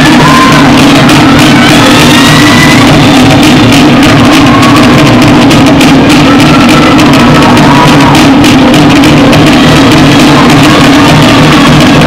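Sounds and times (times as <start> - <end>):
large drums beating: 0.0 - 12.0
wooden slit drums struck: 0.0 - 12.0.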